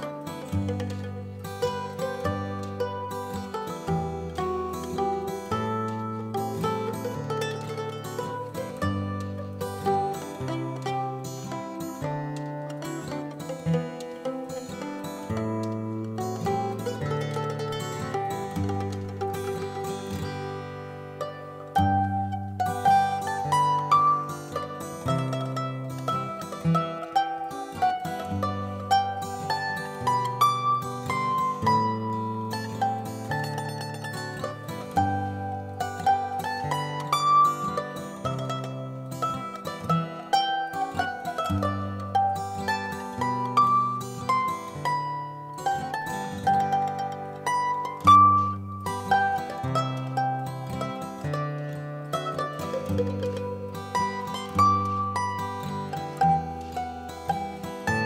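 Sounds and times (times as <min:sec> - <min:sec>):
acoustic guitar accompaniment: 0:00.0 - 0:58.0
mandolin melody: 0:00.0 - 0:58.0.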